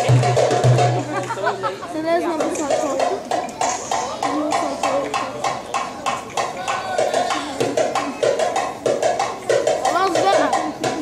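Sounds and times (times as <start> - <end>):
music with drums: 0.0 - 11.0
people talking and calling out: 0.0 - 11.0.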